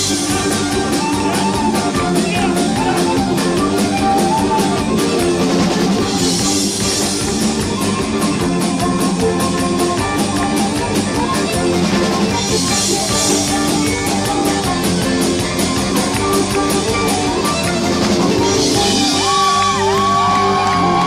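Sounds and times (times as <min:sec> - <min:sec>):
drum kit: 0:00.0 - 0:21.0
electric guitar: 0:00.0 - 0:21.0
fiddle: 0:00.0 - 0:21.0.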